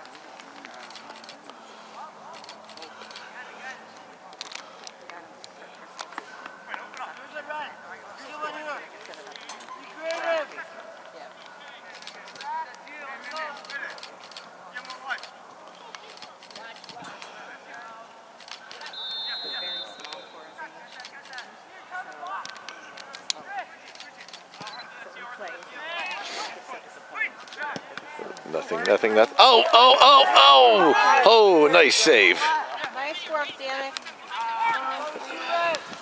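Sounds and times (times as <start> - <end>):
distant shouts and calls: 18.2 - 22.3, 29.0 - 32.9.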